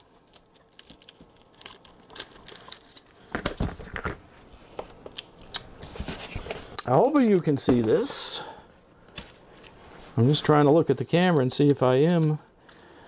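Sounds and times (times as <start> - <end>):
plastic film crinkling: 0.0 - 4.2.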